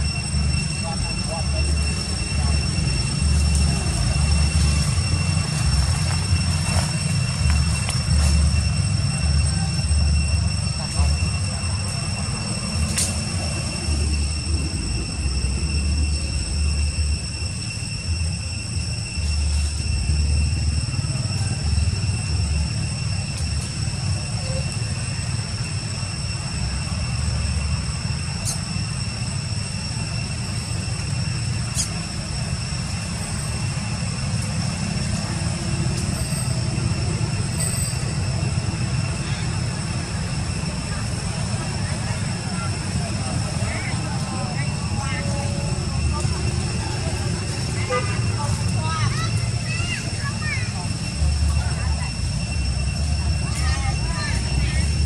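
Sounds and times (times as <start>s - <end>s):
high-pitched whine: 0.0s - 55.0s.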